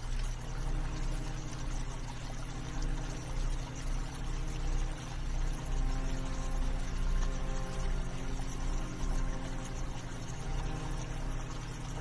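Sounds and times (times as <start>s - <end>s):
stream splashing over rocks: 0.0s - 12.0s.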